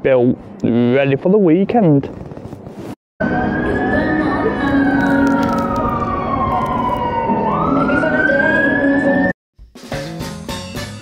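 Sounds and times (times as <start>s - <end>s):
street traffic: 0.0s - 9.3s
emergency vehicle siren wailing: 3.2s - 9.4s.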